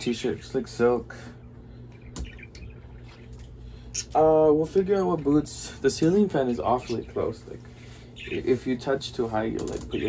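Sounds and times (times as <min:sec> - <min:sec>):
birds chirping: 0:00.0 - 0:10.0
ceiling fan hum: 0:00.0 - 0:10.0.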